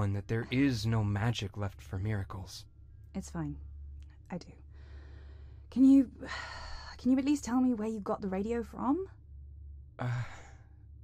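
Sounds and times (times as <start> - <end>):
faint low steady hum: 0.0 - 11.0.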